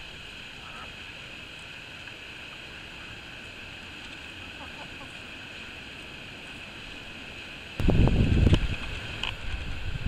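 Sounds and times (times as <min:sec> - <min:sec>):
faint outdoor hiss: 0:00.0 - 0:10.0
wind buffeting microphone: 0:07.8 - 0:10.0.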